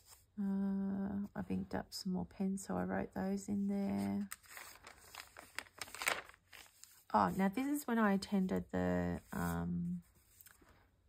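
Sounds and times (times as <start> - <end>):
pages rustling: 3.9 - 7.6, 9.2 - 10.8
page swishes: 4.2 - 7.0.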